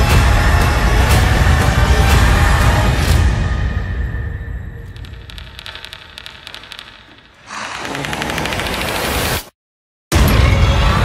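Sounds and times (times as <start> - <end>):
faint scattered clicking: 4.9 - 9.0
fast rattling: 4.9 - 9.2.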